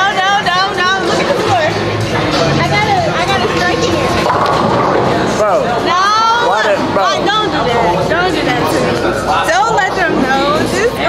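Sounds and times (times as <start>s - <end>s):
echoing voices and chatter: 0.0s - 11.0s.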